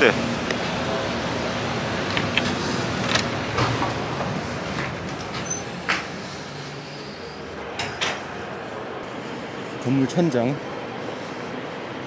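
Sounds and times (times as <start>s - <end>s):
background hubbub: 0.0s - 12.0s.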